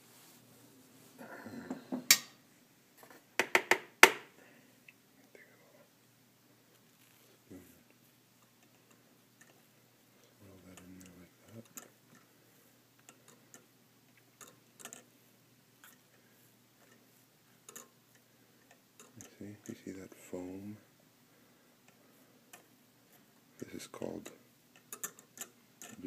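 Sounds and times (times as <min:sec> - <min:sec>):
soft ticks of stirring: 0:04.8 - 0:05.6, 0:06.6 - 0:26.0.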